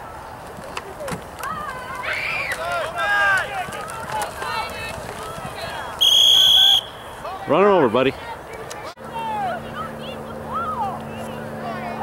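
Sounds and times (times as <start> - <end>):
referee's whistle blast: 6.0 - 7.1.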